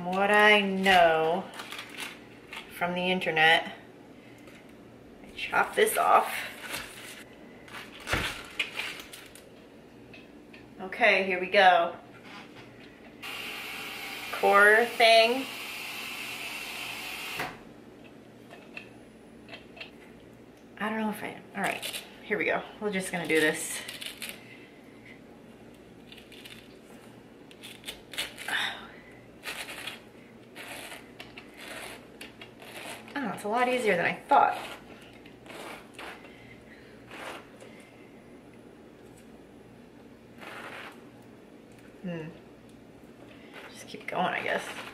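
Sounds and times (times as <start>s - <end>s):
corer cutting through pineapple: 30.6s - 33.2s, 34.4s - 36.2s.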